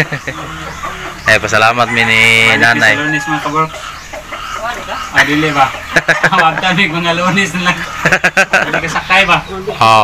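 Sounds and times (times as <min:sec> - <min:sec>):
chickens clucking: 0:00.0 - 0:10.0
people's voices: 0:00.0 - 0:10.0.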